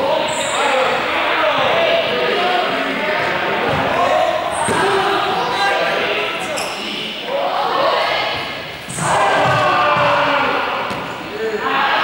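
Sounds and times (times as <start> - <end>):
players' voices echoing: 0.0 - 12.0.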